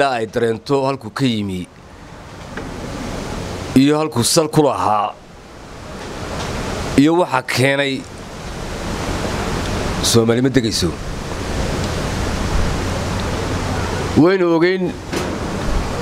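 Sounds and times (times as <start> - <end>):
man speaking: 0.0 - 1.7, 3.8 - 5.2, 7.0 - 8.1, 10.0 - 11.0, 14.2 - 15.0
loud rushing noise: 8.2 - 16.0.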